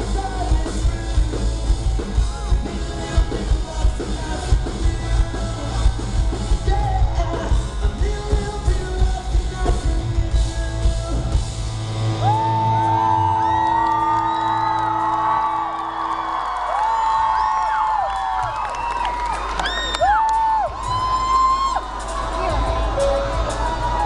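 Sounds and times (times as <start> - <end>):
rock band playing: 0.0 - 18.0, 19.4 - 24.0
crowd screaming and cheering: 0.0 - 24.0.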